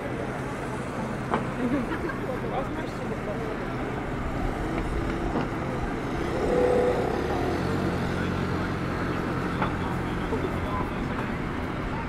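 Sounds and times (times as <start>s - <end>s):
heavy engine humming: 0.0s - 12.0s
people talking: 0.0s - 12.0s
street traffic: 0.0s - 12.0s.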